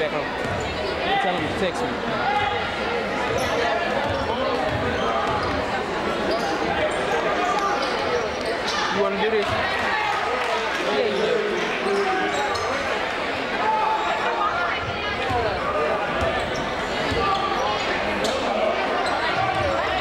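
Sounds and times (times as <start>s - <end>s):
voices in gym: 0.0s - 20.0s.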